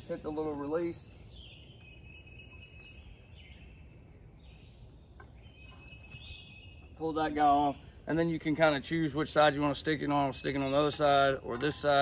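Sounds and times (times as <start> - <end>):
birds calling: 0.0 - 12.0.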